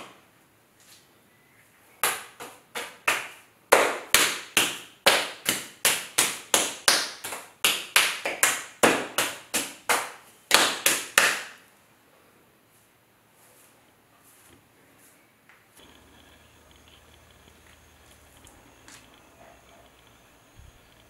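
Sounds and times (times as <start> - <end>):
hands slapping damp clay: 2.0 - 11.6.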